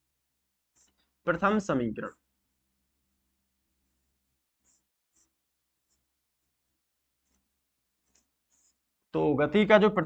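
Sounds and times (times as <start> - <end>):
chalk writing on chalkboard: 0.0 - 1.1, 2.4 - 9.0.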